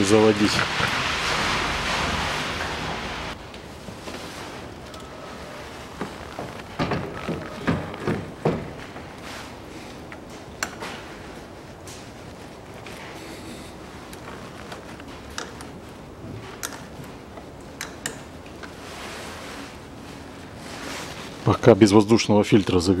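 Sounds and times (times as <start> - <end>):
steady hiss: 0.0 - 6.8, 7.4 - 23.0.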